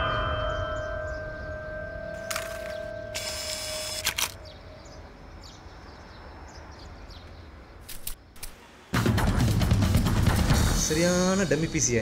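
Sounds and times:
high ringing tone: 0:00.0 - 0:04.9.

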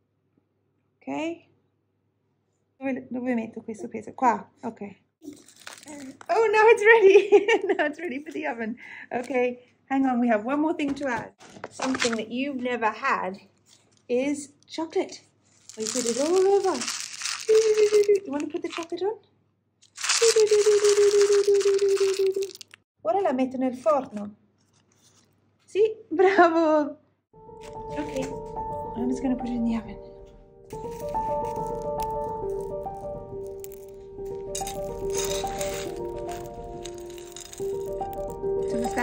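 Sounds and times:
plastic trowel scraping gravel: 0:15.6 - 0:18.2, 0:19.9 - 0:22.8, 0:30.8 - 0:39.0
slow background music: 0:27.4 - 0:39.0.

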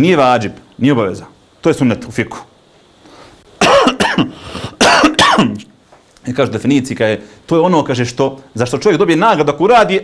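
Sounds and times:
man coughing and clearing throat: 0:03.6 - 0:05.6.

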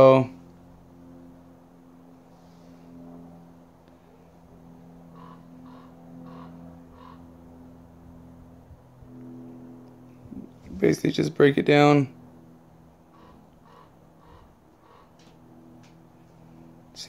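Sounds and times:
faint steady hum: 0:00.0 - 0:17.0
distant animal calling: 0:04.0 - 0:08.0, 0:13.0 - 0:16.7.

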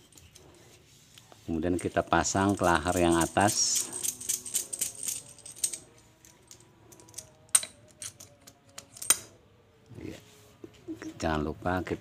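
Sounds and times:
rollers rattling: 0:02.2 - 0:05.8.

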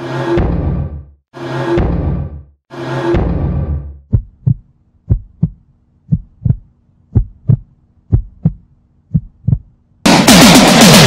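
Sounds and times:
heartbeat double thumps: 0:04.0 - 0:09.7
faint steady hum: 0:04.3 - 0:10.0.

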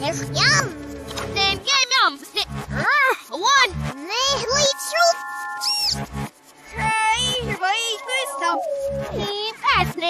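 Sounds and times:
cartoon character voice: 0:00.0 - 0:06.1, 0:06.8 - 0:10.0
cartoon music with held chord: 0:00.0 - 0:10.0.

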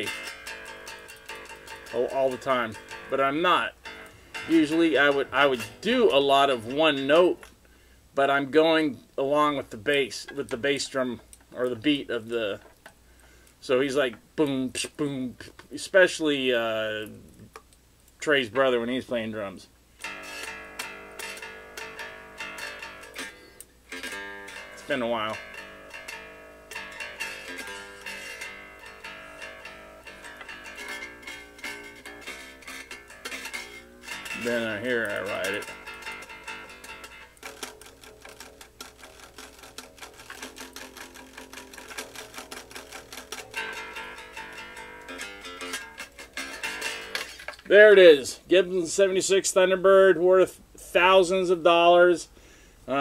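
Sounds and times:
electric bass plucked notes: 0:00.0 - 0:07.5, 0:20.0 - 0:48.2.

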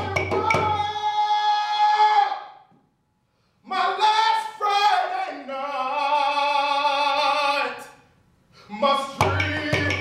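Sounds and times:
djembe drumming: 0:00.0 - 0:01.0, 0:09.2 - 0:10.0
man singing: 0:00.0 - 0:02.7, 0:03.6 - 0:08.0, 0:08.6 - 0:10.0.

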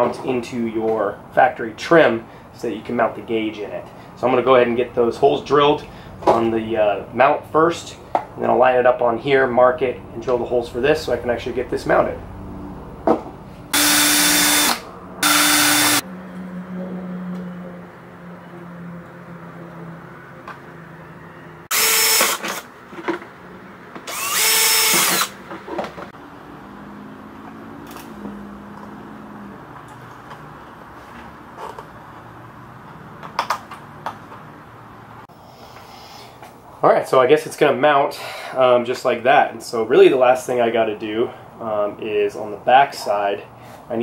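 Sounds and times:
cordless drill whining: 0:13.7 - 0:16.0, 0:21.7 - 0:22.7, 0:24.0 - 0:25.4.

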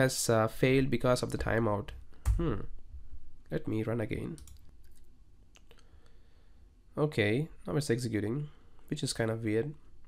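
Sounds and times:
keyboard and mouse clicks: 0:04.3 - 0:05.7.

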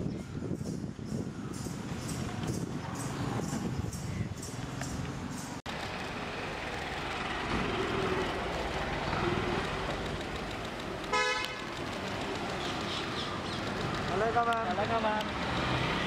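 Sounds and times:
street traffic noise: 0:00.0 - 0:16.0
vehicle horn toot: 0:11.1 - 0:11.7.

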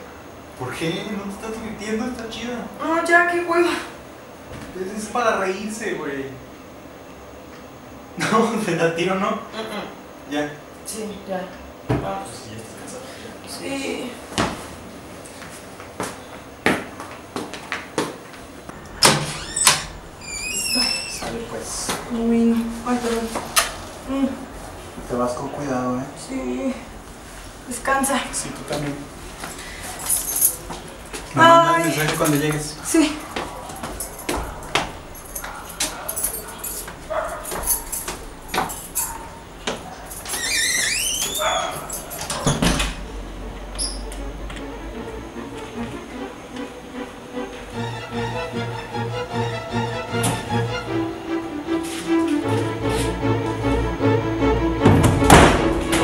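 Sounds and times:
footsteps and knocks: 0:14.3 - 0:19.2, 0:33.2 - 0:40.4, 0:54.8 - 0:56.0
door unlocked and opened: 0:18.8 - 0:21.4, 0:40.2 - 0:43.0.

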